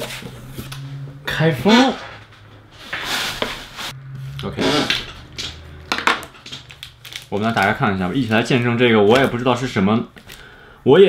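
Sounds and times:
packing tape tearing: 0:04.6 - 0:09.4.

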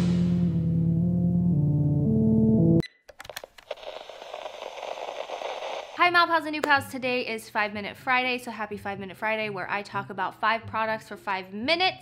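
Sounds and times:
music: 0:00.0 - 0:02.8, 0:06.0 - 0:12.0.

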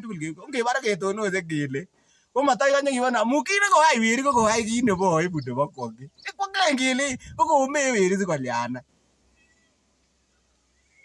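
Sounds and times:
faint high chirps: 0:09.2 - 0:11.0.

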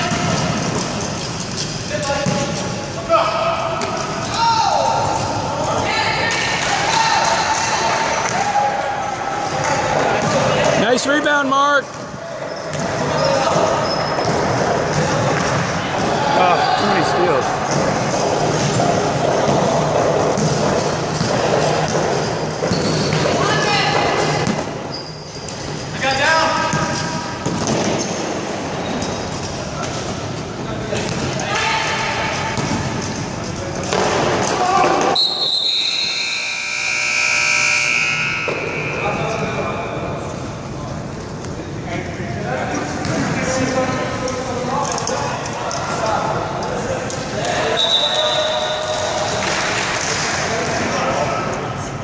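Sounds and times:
players shouting in echoing hall: 0:01.9 - 0:24.9, 0:30.7 - 0:33.0, 0:33.9 - 0:40.3, 0:42.4 - 0:51.5
long steady high tone: 0:35.2 - 0:40.0.

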